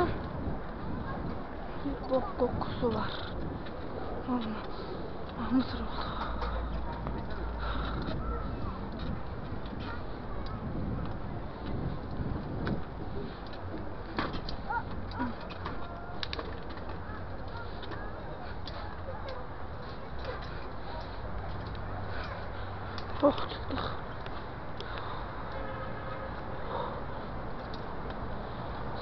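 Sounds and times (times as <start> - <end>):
bicycle rolling over cobblestones: 2.0 - 25.2.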